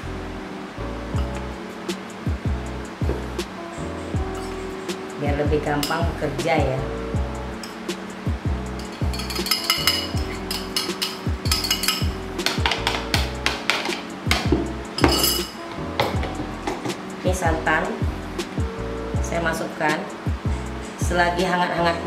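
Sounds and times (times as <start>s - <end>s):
background music: 0.0s - 22.0s
metal spoon scraping a bowl: 8.8s - 14.1s.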